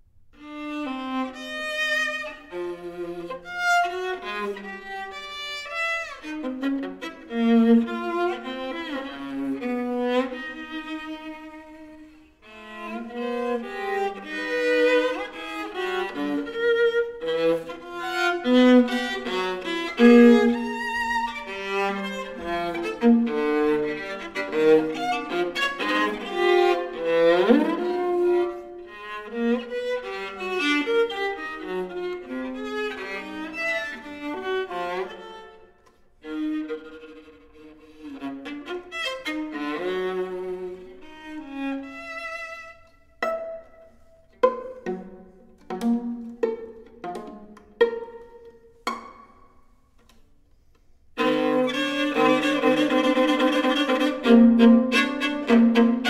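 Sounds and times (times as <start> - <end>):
viola bowed passages: 0.4 - 56.0
plucked viola notes: 38.4 - 50.2, 51.2 - 56.0.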